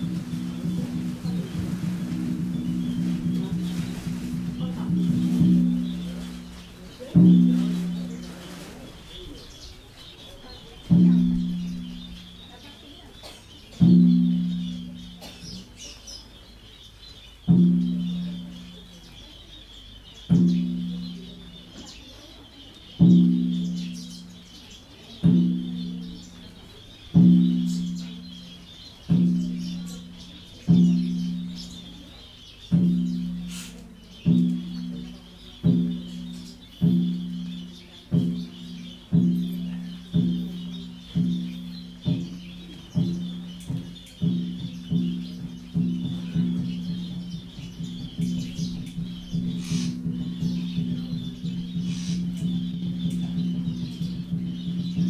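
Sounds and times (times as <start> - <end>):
low temple bell struck: 0.0 - 8.4, 10.4 - 16.0, 17.4 - 19.2, 20.2 - 22.3, 23.0 - 55.0
high chirping: 0.0 - 55.0.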